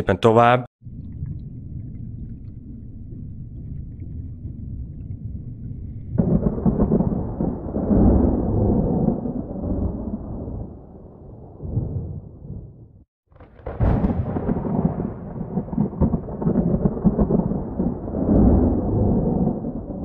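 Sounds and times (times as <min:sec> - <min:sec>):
low steady rumble: 0:00.8 - 0:09.4
thunder rolling: 0:06.1 - 0:20.0.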